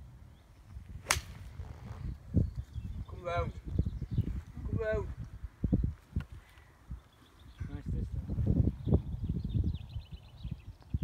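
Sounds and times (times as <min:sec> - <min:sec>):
golf club striking ball: 0:01.0 - 0:01.4
low rumble on microphone: 0:06.9 - 0:11.0.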